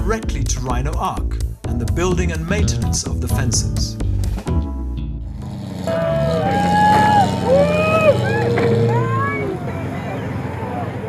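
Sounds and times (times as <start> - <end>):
car engines revving: 4.0 - 11.0.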